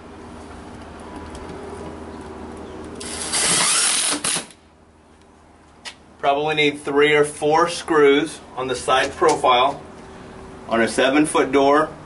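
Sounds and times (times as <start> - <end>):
cordless screwdriver motor whine: 3.0 - 4.5.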